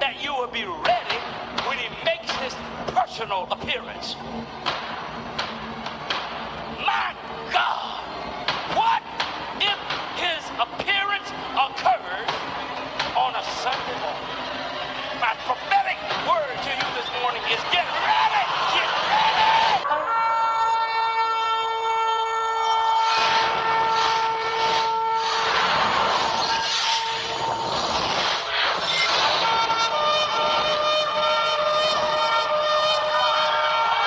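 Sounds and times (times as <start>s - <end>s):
loud street din: 0.0s - 34.0s
man shouting through a microphone: 6.8s - 8.1s, 8.7s - 12.2s, 15.2s - 19.8s
car horns blaring: 19.7s - 25.8s, 29.0s - 34.0s.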